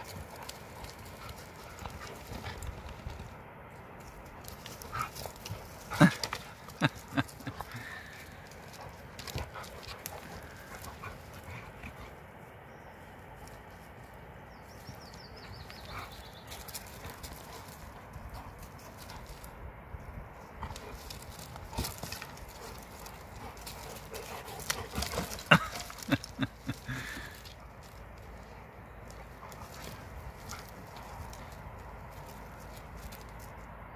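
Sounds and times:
dogs scuffling on stony ground: 0.0 - 33.9.

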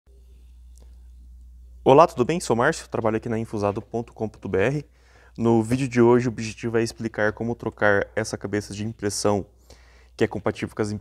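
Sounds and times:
faint low hum: 0.1 - 11.0
man speaking: 1.8 - 9.6, 10.2 - 11.0.

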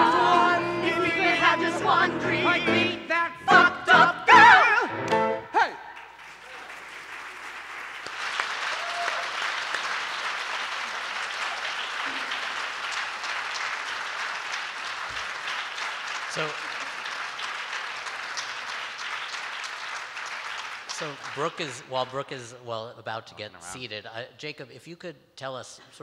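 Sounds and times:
audience applauding: 5.1 - 22.2.

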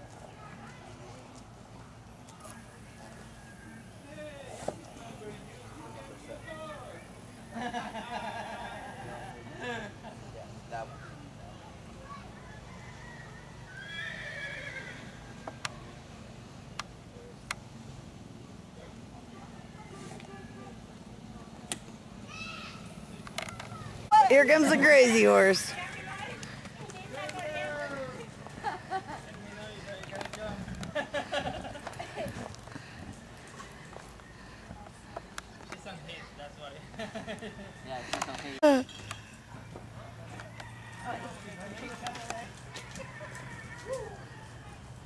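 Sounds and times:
distant people talking: 0.0 - 45.0
horse whinnying: 13.7 - 15.2.

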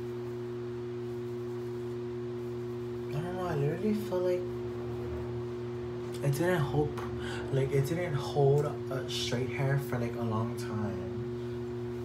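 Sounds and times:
steady electrical hum: 0.0 - 12.0.

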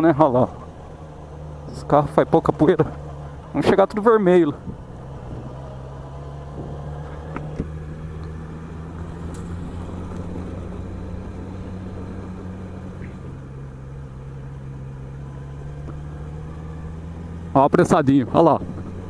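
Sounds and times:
motorcycle engine cruising: 0.0 - 19.0
road noise: 0.0 - 19.0.

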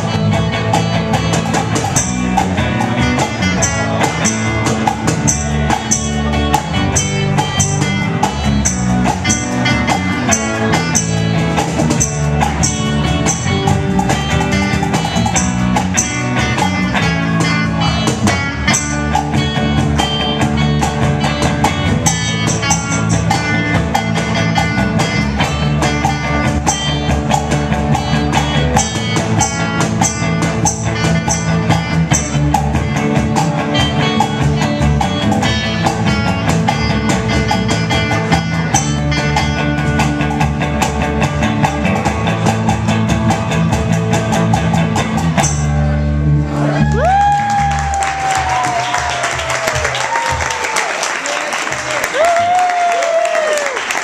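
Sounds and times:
electric bass: 0.0 - 50.7
electric guitars: 0.0 - 51.0
drum kit beats: 0.0 - 54.0.

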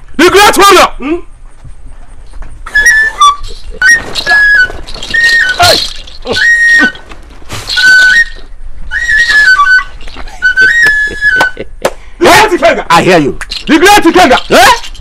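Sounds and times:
flute playing short phrases: 2.8 - 7.0, 7.7 - 11.5.

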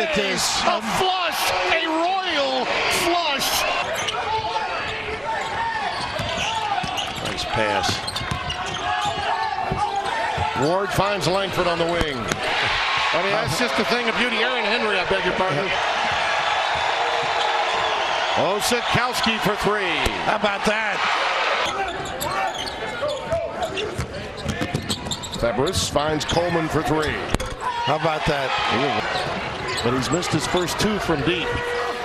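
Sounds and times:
arena crowd noise: 0.0 - 32.0.

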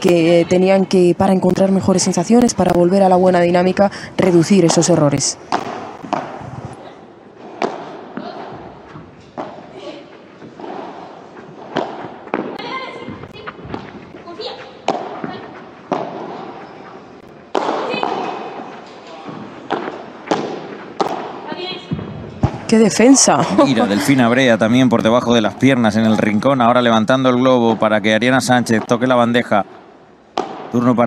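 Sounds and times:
padel ball struck by rackets: 4.6 - 6.5, 10.4 - 14.1, 14.8 - 16.6, 17.2 - 22.7, 30.3 - 30.8.

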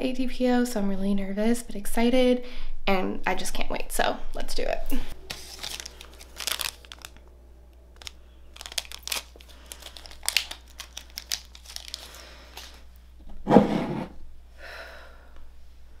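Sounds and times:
wrapper crinkling and tearing: 5.2 - 7.2, 8.0 - 12.8.

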